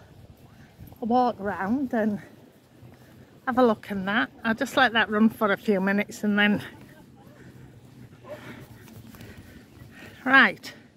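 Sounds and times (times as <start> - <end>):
distant voices: 0.0 - 10.9.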